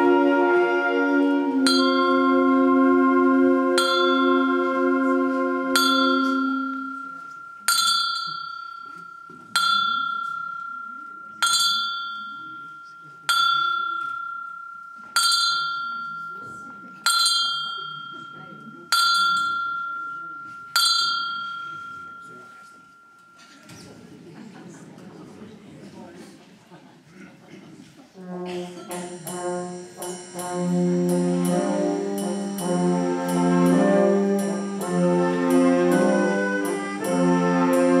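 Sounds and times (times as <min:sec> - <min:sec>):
concert band chord: 0:00.0 - 0:07.3, 0:28.3 - 0:38.0
tubular bell tolling: 0:01.6 - 0:03.1, 0:03.7 - 0:23.5, 0:28.7 - 0:36.8.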